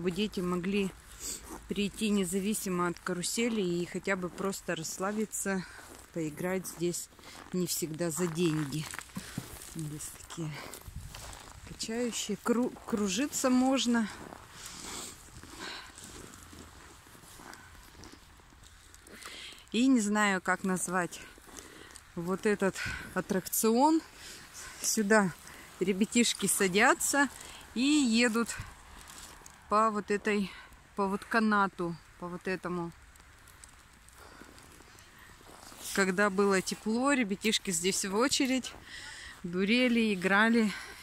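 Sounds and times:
woman speaking: 0.0s - 1.0s, 1.6s - 10.8s, 11.7s - 14.3s, 19.7s - 21.4s, 22.1s - 28.7s, 29.7s - 33.0s, 35.8s - 40.9s
footsteps crunching in snow: 0.0s - 29.7s, 33.1s - 41.0s
faint outdoor background noise: 0.0s - 41.0s.

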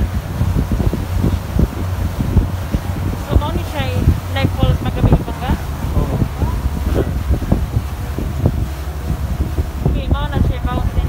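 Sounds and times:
boat engine low rumble: 0.0s - 11.0s
wind buffeting microphone: 0.0s - 11.0s.

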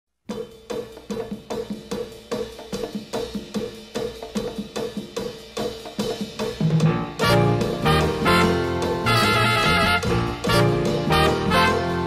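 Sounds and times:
steady drum beat: 0.2s - 12.0s.

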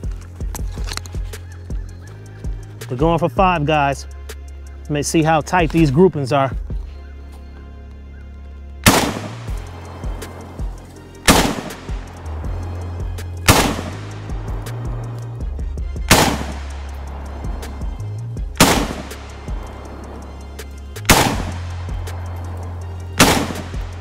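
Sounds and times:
background music with bass line: 0.0s - 24.0s
rifle shots with echo: 8.8s - 10.6s, 11.3s - 12.2s, 13.4s - 14.9s, 16.1s - 17.3s, 18.6s - 20.2s, 21.0s - 24.0s.

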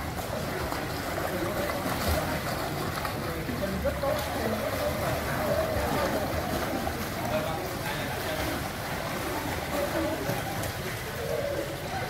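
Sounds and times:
children splashing in pool: 0.0s - 12.0s
faint voices: 0.0s - 12.0s.

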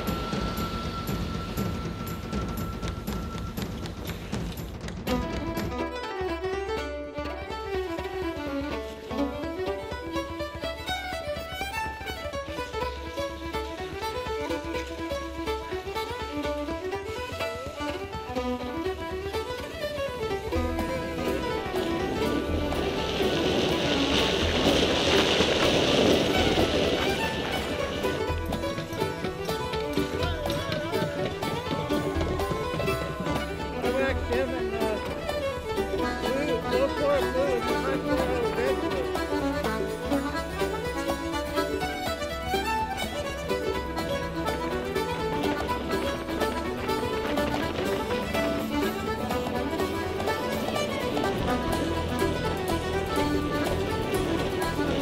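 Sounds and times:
fiddle music: 0.0s - 55.0s
rush of noise: 19.8s - 36.3s.

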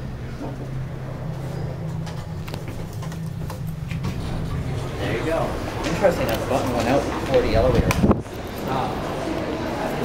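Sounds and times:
elevator cab hum: 0.0s - 10.0s.

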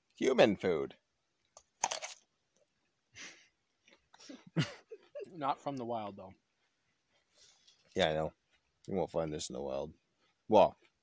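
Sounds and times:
crunchy bite into apple: 1.8s - 2.2s.

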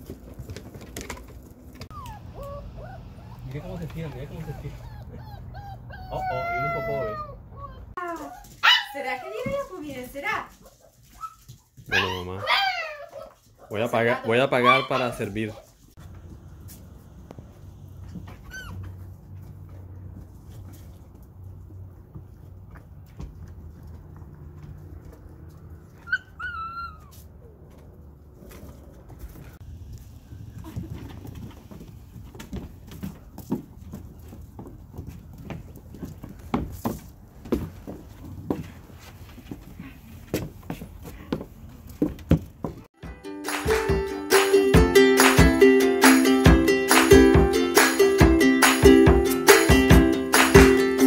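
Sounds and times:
puppy whining: 1.8s - 9.4s, 11.2s - 15.4s, 18.3s - 19.0s, 25.9s - 27.8s
puppy whimpering: 1.9s - 9.4s, 12.0s - 15.4s, 18.3s - 19.0s, 26.0s - 27.7s.

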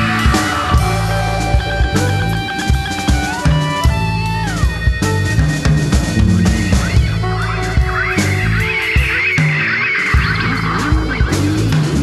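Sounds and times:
bass notes: 0.0s - 12.0s.

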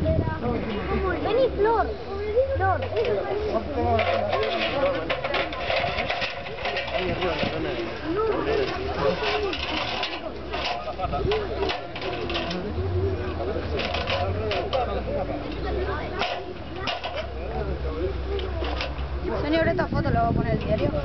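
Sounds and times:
people talking at once: 0.0s - 21.0s.

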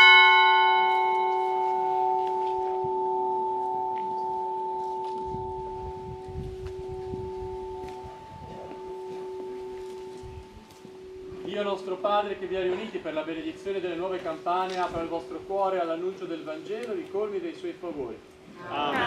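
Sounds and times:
church bell ringing: 0.0s - 16.7s.

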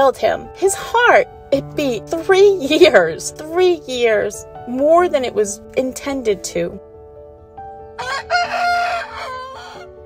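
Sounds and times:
rooster crowing: 8.0s - 10.0s.

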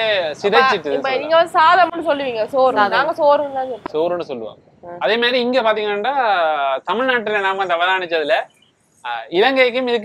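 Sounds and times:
people talking: 0.0s - 8.5s, 9.1s - 10.0s.

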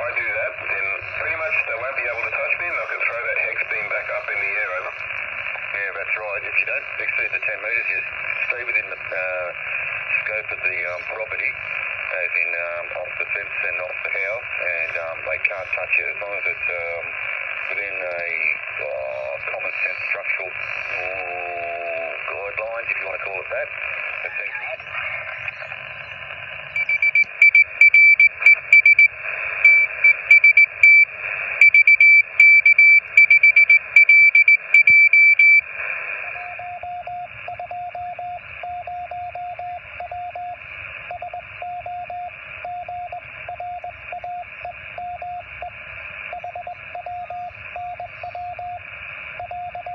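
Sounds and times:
radio band hiss: 0.0s - 49.9s
morse code beeping: 26.7s - 35.6s, 36.4s - 49.9s.

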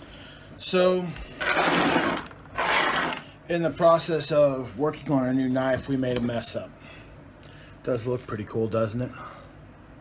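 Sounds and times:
scraping across workbench: 1.4s - 3.3s.

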